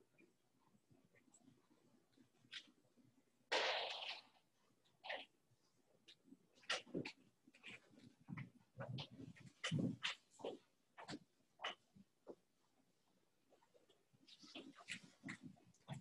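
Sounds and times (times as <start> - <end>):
faint room noise: 0.0 - 16.0
rustles and taps at desks: 6.1 - 12.5.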